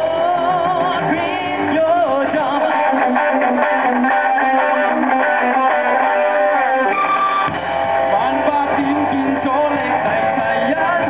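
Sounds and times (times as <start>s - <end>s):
deep bass notes: 0.0s - 11.0s
electric guitar: 0.0s - 11.0s
live rock band: 0.0s - 11.0s.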